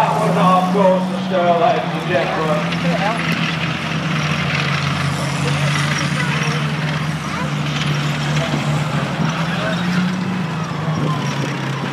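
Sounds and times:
military vehicle engines droning: 0.0 - 11.9.

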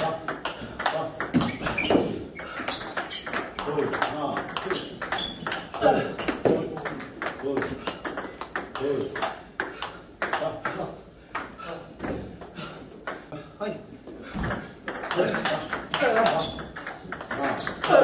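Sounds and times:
balls bouncing on table: 0.0 - 13.4, 14.2 - 18.0
table tennis balls hit with paddles: 0.0 - 13.4, 14.1 - 18.0.

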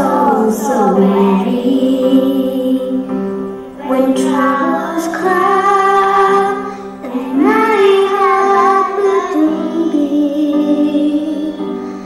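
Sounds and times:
children singing: 0.0 - 3.2, 3.8 - 11.8.

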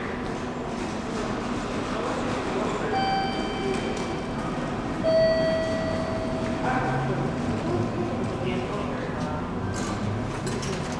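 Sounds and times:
crowd hubbub: 0.0 - 10.9
electronic chime tones: 5.0 - 6.6.

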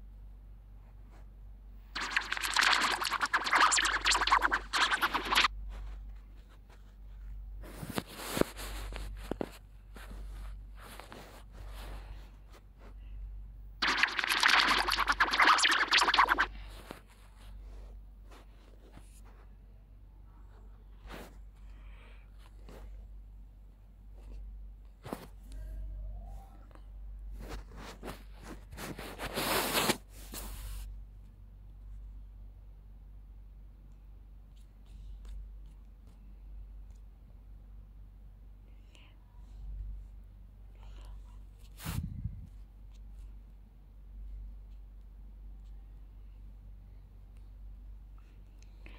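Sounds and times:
low steady hum: 0.0 - 29.5, 30.1 - 48.9
faint whispered voice: 25.3 - 27.0, 38.6 - 39.8.

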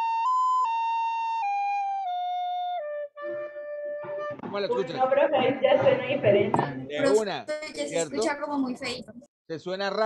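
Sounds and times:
recorder playing a melody: 0.0 - 4.8.

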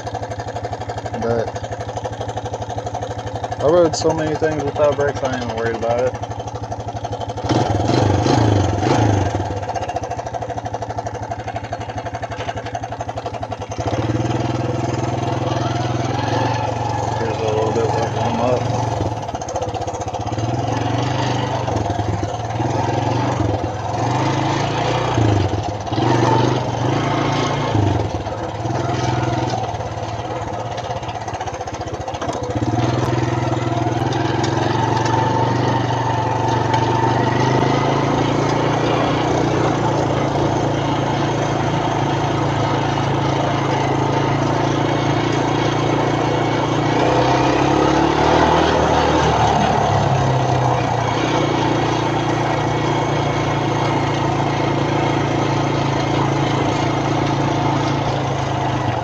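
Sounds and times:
atv engine running: 0.0 - 59.0.

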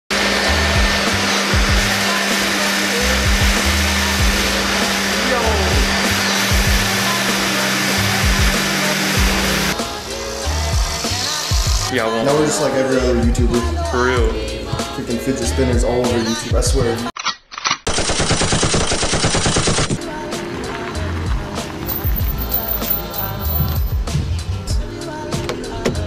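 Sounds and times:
electric air blower humming: 0.1 - 13.2.

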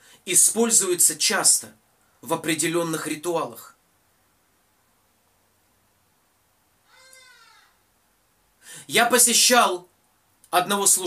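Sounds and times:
cat meowing: 6.9 - 7.8.

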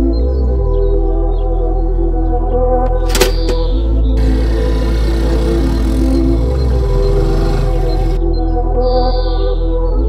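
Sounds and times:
background music: 0.8 - 10.0
road and wind noise: 2.8 - 8.3
motorcycle engine running: 2.9 - 8.3.

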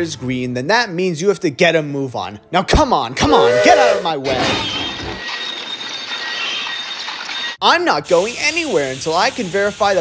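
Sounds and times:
steady hiss: 8.0 - 10.0.

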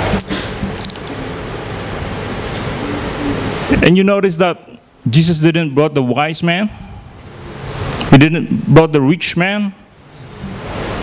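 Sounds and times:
steady loud hiss: 0.0 - 11.0
man speaking into a microphone: 3.7 - 6.9, 8.1 - 9.9.

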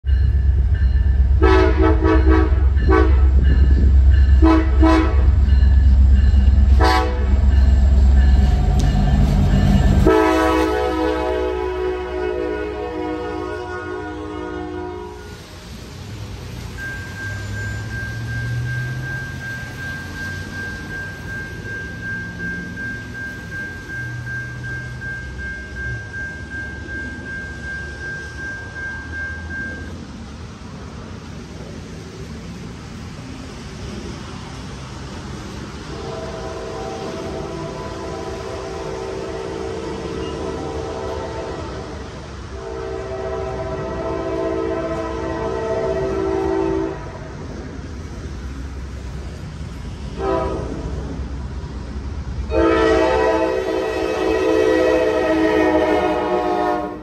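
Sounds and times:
high-pitched tone: 0.0 - 11.5, 16.7 - 30.0
heavy engine rumble: 0.0 - 12.1
locomotive air horn: 1.4 - 3.4, 4.4 - 5.4, 6.7 - 7.6, 8.7 - 15.4, 35.9 - 47.4, 50.2 - 50.9, 52.5 - 57.0.

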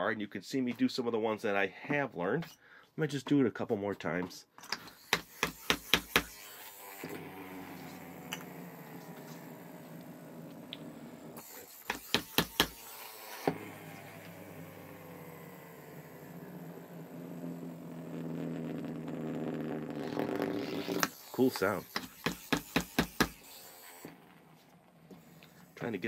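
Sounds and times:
spinning top whirring: 4.8 - 26.0.

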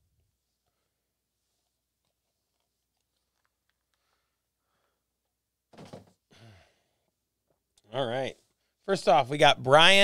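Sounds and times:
man sighing: 6.3 - 6.9
man speaking: 7.9 - 10.0.

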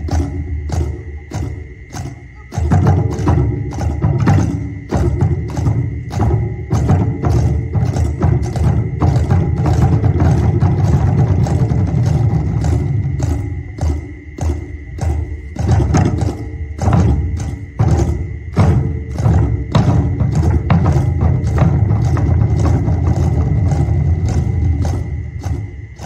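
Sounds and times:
heavy low drum: 0.0 - 26.0
sharp clacking drum strokes: 0.0 - 26.0
thin steady high tone: 0.0 - 26.0.

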